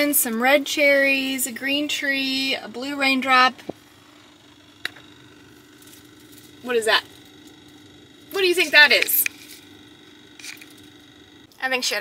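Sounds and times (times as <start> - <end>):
woman speaking: 0.0 - 3.6, 6.6 - 7.2, 8.3 - 9.4, 11.6 - 12.0
steady low hum: 0.0 - 12.0.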